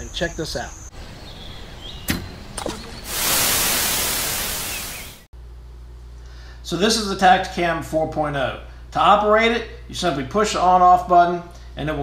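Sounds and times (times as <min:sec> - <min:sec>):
burst of static hiss: 0:02.7 - 0:05.3.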